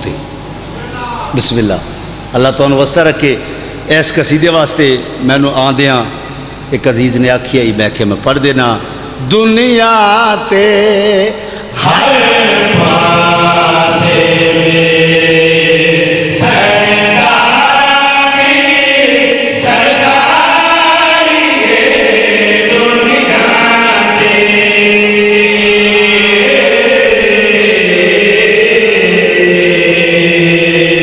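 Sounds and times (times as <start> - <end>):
men chanting in unison: 9.4 - 31.0.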